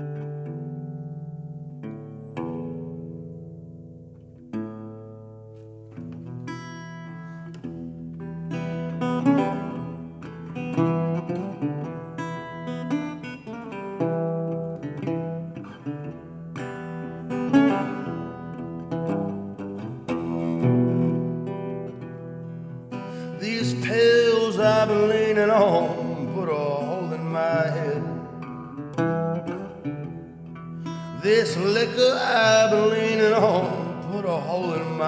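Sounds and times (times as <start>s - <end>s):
resonator guitar playing: 0.0s - 35.0s.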